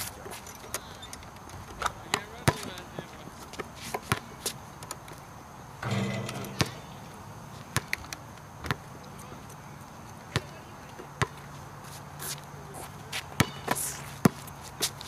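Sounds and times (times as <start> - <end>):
basketball bouncing on court: 5.8 - 7.1.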